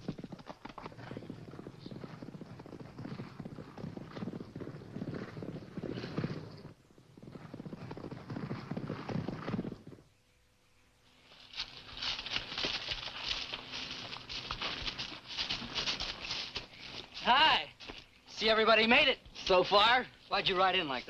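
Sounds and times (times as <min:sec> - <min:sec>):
horse galloping hoofbeats: 0:00.0 - 0:10.1, 0:11.4 - 0:18.1.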